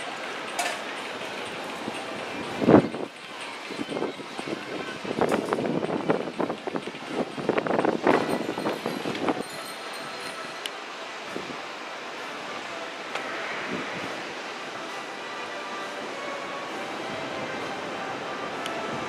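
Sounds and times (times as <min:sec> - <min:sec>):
steady rushing noise: 0:00.0 - 0:19.0.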